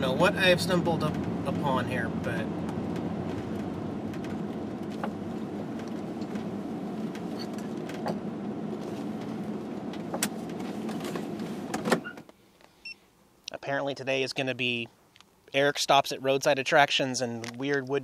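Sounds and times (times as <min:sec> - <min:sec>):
engine and road rumble: 0:00.0 - 0:18.0.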